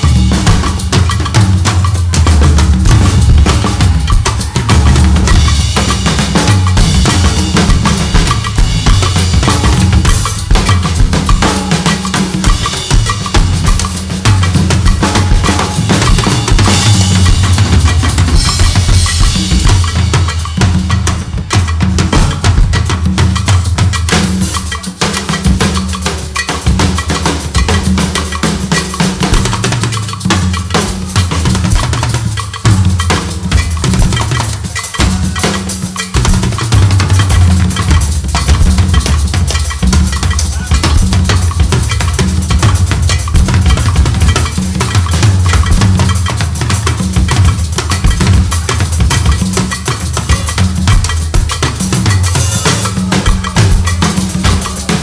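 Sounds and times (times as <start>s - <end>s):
afrobeat drumming: 0.0s - 55.0s.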